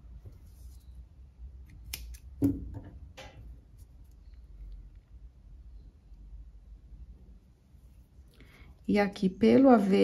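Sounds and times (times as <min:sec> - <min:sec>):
scissors snipping yarn: 0:01.7 - 0:02.4.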